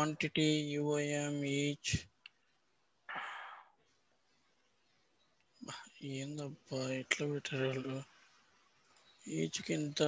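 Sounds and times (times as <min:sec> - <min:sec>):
person sighing: 0:03.1 - 0:03.8.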